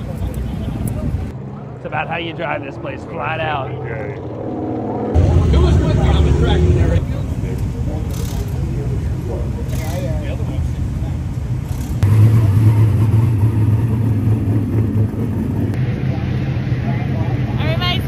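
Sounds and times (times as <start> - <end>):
engine idling: 4.2 - 18.0.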